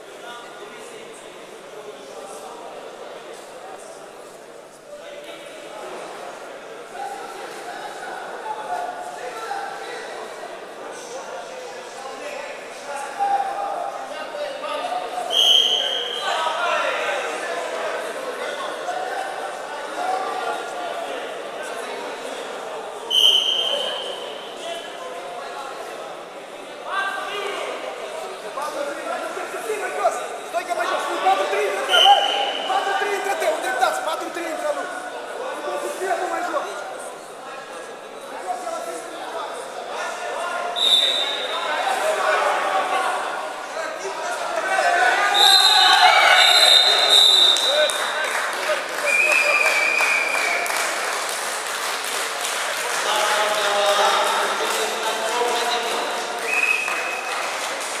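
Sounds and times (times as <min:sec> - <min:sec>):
crowd murmur in a hall: 0:00.0 - 0:58.0
referee's whistle blast: 0:15.3 - 0:16.3, 0:23.1 - 0:24.3, 0:31.9 - 0:32.8, 0:40.8 - 0:41.6, 0:45.4 - 0:47.9.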